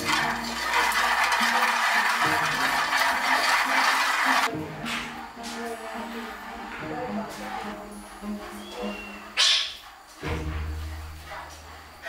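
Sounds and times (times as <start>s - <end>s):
peanuts rattling in metal pan: 0.0s - 4.5s.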